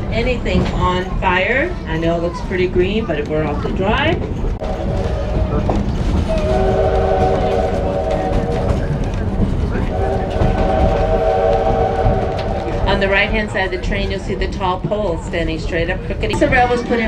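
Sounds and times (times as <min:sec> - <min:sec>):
train rolling rumble: 0:00.0 - 0:17.0
steam locomotive whistle: 0:06.2 - 0:09.1, 0:09.7 - 0:13.6.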